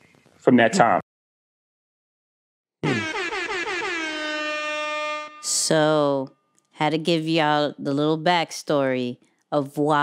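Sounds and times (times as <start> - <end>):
warbling air horn blast: 2.8 - 5.8.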